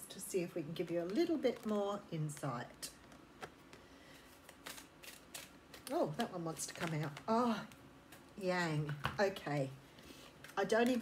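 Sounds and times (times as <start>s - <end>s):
cards being shuffled: 0.8s - 9.2s, 10.3s - 11.0s.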